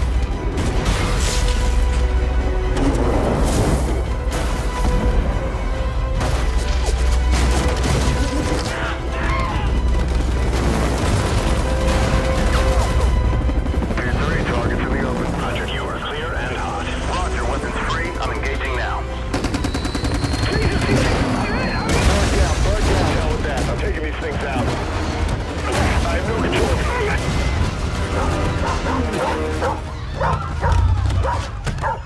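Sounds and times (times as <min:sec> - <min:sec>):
film music: 0:00.0 - 0:32.0
people shouting: 0:08.6 - 0:09.8
rapid gunfire: 0:09.7 - 0:15.4, 0:18.1 - 0:29.6.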